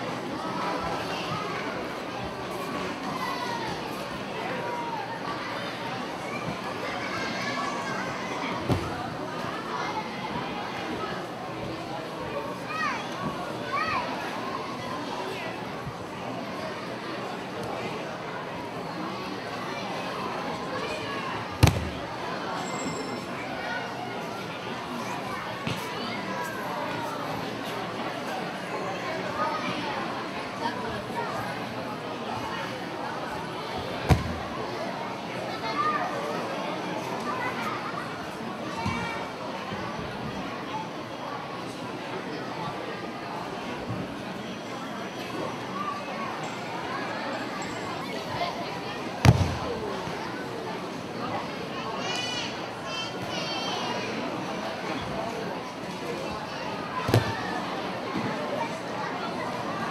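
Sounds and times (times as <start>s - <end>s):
body thudding onto mat: 21.6s - 22.0s, 34.1s - 34.4s, 49.2s - 49.6s.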